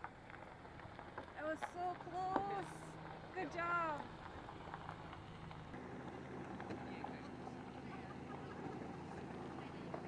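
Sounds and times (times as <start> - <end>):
car engine humming: 0.0 - 10.0.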